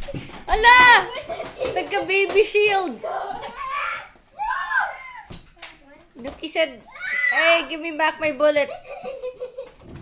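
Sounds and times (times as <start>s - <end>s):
child exclaiming: 2.9s - 5.3s, 6.9s - 7.7s.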